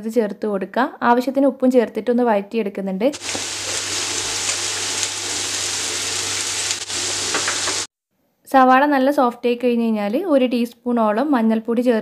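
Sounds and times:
onions sizzling in oil: 3.2 - 7.9.

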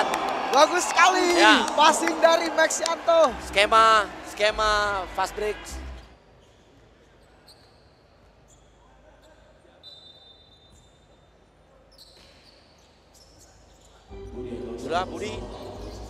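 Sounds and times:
sneaker squeaks on court: 6.4 - 11.2, 11.9 - 14.0
low hall murmur: 14.0 - 16.0.

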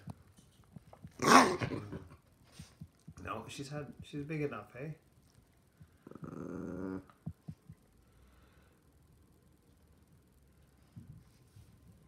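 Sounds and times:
puppy growling: 1.1 - 2.2, 6.0 - 7.3.

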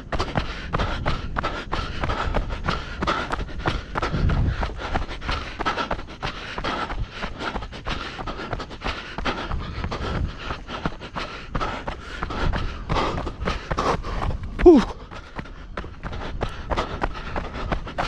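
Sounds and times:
hard panting breaths: 0.0 - 18.0
running footsteps on gravel: 0.0 - 18.0.

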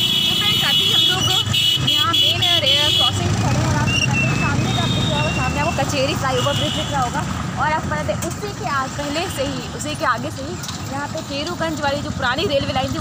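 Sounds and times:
vehicle horn: 0.0 - 3.2, 3.9 - 5.6, 6.3 - 7.1.

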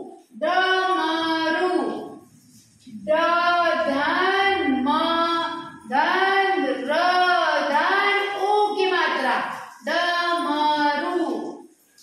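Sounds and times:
person chanting in a sing-song tune: 2.8 - 11.6.

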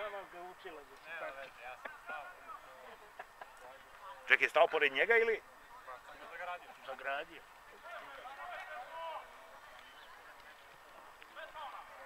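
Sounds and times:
distant shouted calls: 0.0 - 12.0.

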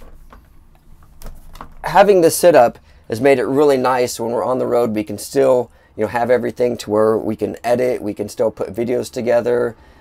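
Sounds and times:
man talking: 1.8 - 9.8.

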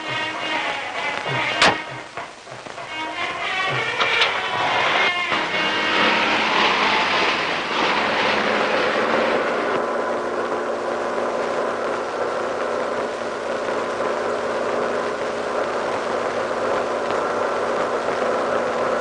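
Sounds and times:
car engine drone: 0.0 - 19.0
hissing rush: 0.0 - 19.0.

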